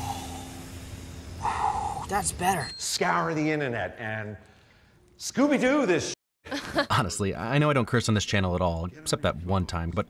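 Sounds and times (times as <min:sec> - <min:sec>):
steam hissing: 0:00.0 - 0:02.7.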